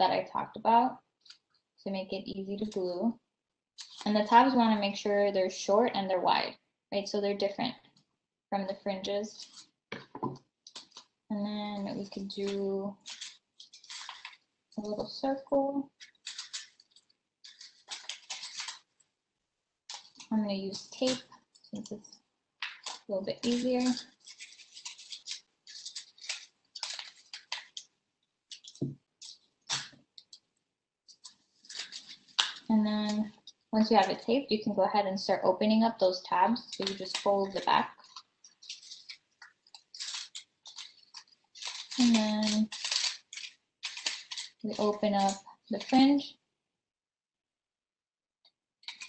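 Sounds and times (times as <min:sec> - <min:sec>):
paper rustling: 0:03.8 - 0:04.4, 0:11.8 - 0:14.5, 0:15.9 - 0:19.1, 0:19.9 - 0:30.4, 0:31.1 - 0:34.2, 0:36.6 - 0:46.2.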